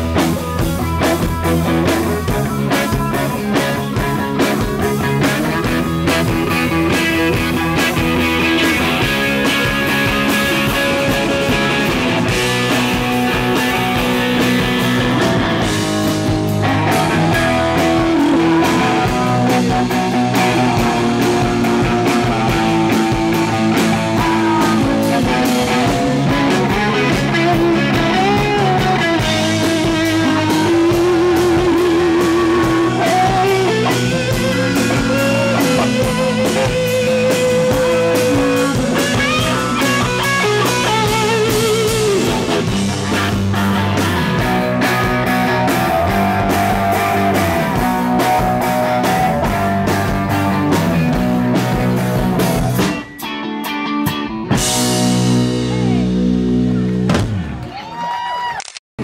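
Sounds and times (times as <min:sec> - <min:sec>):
electric guitar lead: 0:00.0 - 0:57.9
drum kit: 0:00.0 - 0:58.0.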